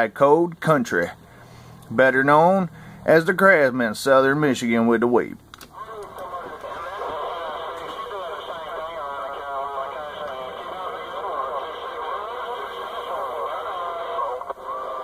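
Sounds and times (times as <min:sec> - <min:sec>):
garbled radio voices: 0:05.7 - 0:15.0
radio static: 0:05.7 - 0:15.0.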